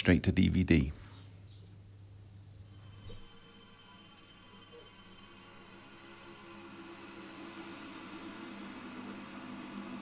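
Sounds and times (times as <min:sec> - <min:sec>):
low droning soundtrack: 0:02.6 - 0:10.0.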